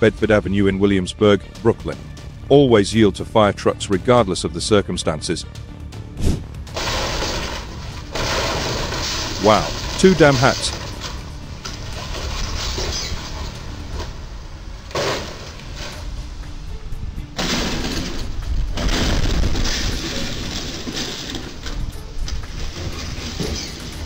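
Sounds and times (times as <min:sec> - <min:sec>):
trailer crashing into bridge: 0:06.7 - 0:14.2, 0:17.4 - 0:24.0.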